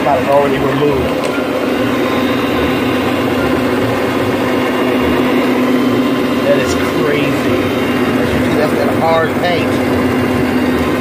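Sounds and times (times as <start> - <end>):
carpet machine humming: 0.0 - 11.0.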